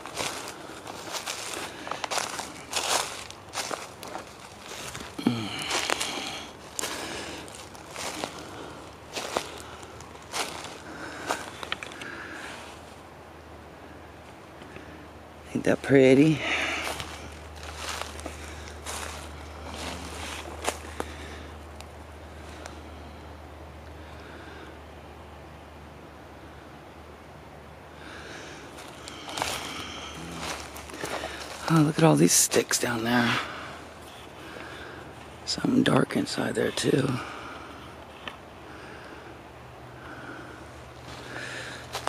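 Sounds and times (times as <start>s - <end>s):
sharp leaf crackles: 0.0s - 12.8s, 16.2s - 23.2s, 28.0s - 33.8s
footsteps crunching through dry leaves: 0.0s - 13.0s, 15.6s - 23.0s, 28.0s - 37.4s, 40.1s - 42.0s.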